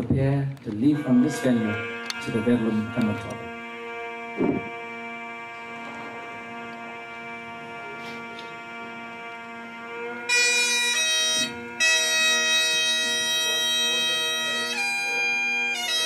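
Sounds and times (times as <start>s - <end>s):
bagpipe drones: 0.0s - 16.0s
bagpipe chanter melody: 0.7s - 16.0s.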